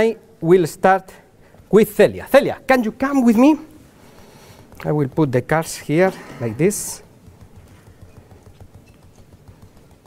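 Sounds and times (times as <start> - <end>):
soft footsteps: 0.4 - 10.0.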